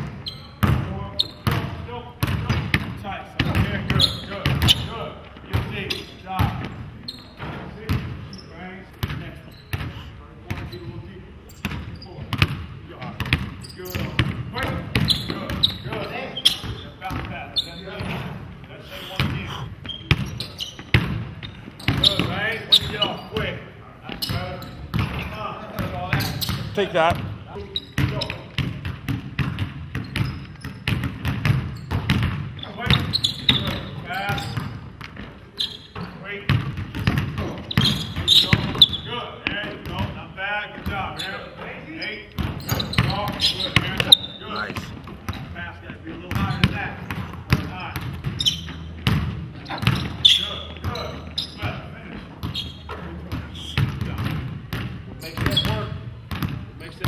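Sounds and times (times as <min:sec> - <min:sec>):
basketball bouncing on wooden floor: 0:00.6 - 0:04.8, 0:24.1 - 0:25.2, 0:28.0 - 0:35.3, 0:36.5 - 0:40.1, 0:46.3 - 0:51.0, 0:53.3 - 0:56.6.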